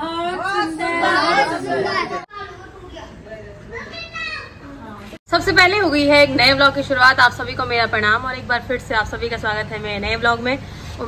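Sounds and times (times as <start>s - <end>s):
quieter voices: 0.0s - 5.2s.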